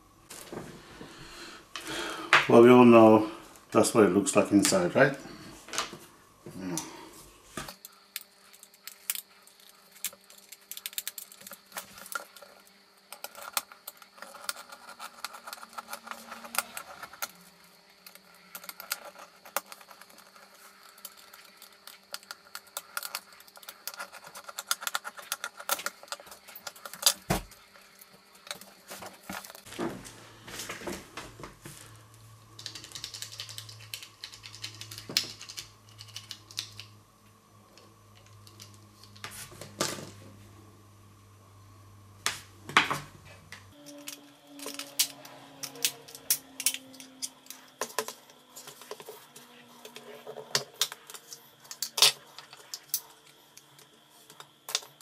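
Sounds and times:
faint steady hum: 0.0 - 55.0
small plastic parts clicking: 32.6 - 36.9.

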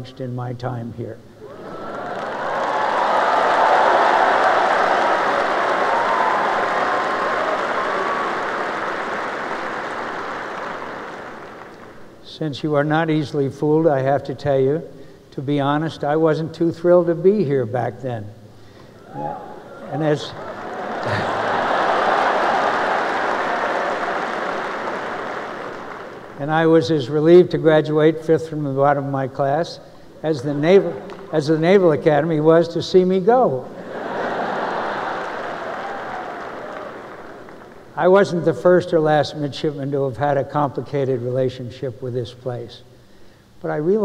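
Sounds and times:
large audience applauding: 1.5 - 12.2, 20.4 - 26.4, 33.8 - 38.0.

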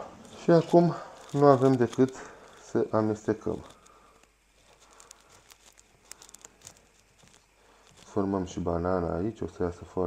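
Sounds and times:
utensil stirring batter in bowl: 0.0 - 8.5.

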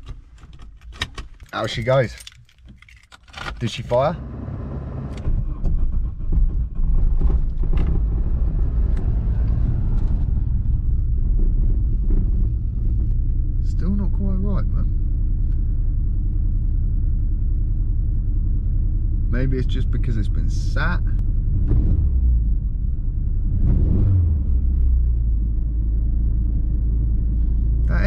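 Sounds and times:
car engine starting and idling: 0.0 - 28.0.

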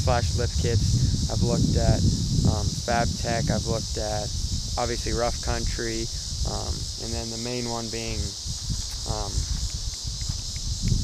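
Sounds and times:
insects chirring: 0.0 - 11.0
wind buffeting microphone: 0.0 - 11.0.

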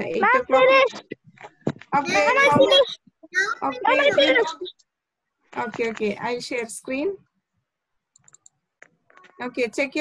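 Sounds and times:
computer mouse clicking: 8.1 - 9.4.

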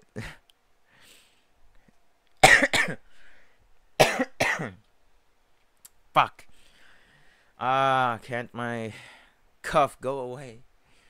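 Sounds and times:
man coughing: 2.4 - 3.0, 4.0 - 4.8.

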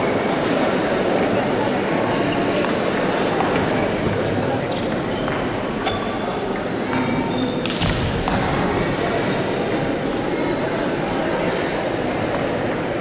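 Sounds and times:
crowd chatter murmur: 0.0 - 13.0.

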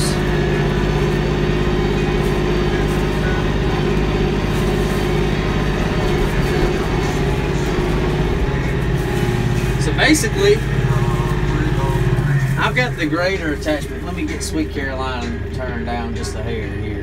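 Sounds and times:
tractor diesel engine running: 0.0 - 17.0.

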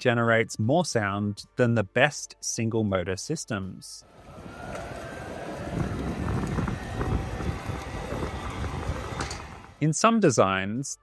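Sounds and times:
road and wind noise: 4.1 - 9.8
e-bike motor whirring: 4.2 - 9.8.

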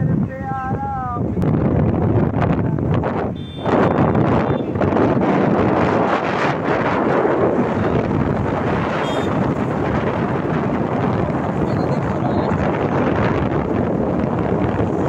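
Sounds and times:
road and traffic noise: 0.0 - 15.0
wind buffeting microphone: 0.0 - 15.0.

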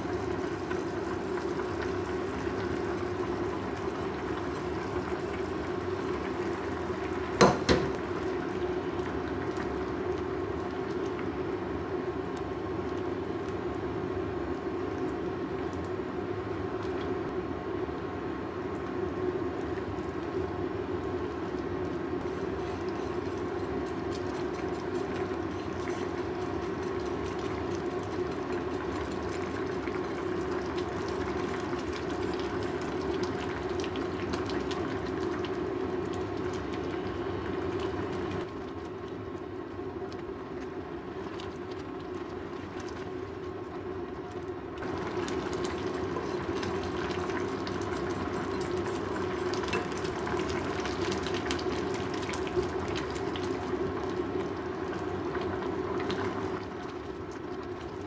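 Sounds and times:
stew bubbling in a pan: 0.0 - 58.0.

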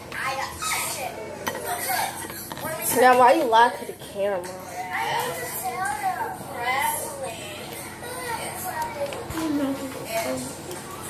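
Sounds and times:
children talking: 0.0 - 11.0.

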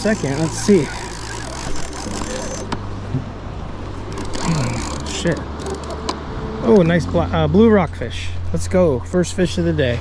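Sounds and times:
fishing reel being cranked: 0.0 - 2.8, 4.1 - 6.0
murmured vocal sounds: 4.4 - 5.1.

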